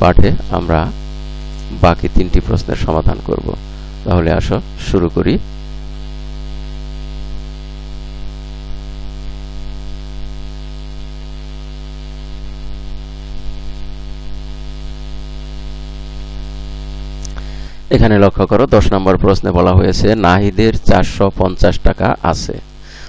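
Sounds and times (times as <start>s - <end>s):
faint hiss: 0.0s - 19.0s
electrical mains hum: 0.0s - 23.0s.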